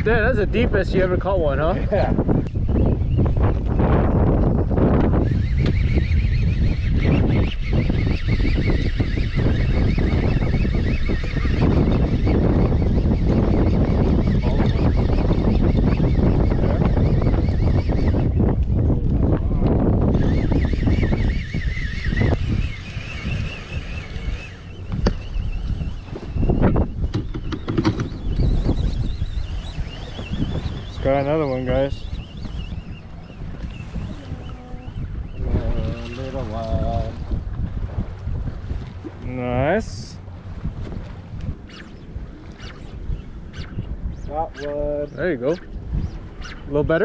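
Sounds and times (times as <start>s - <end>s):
low rumble of wind and water: 0.0s - 47.0s
wind buffeting microphone: 0.0s - 47.0s.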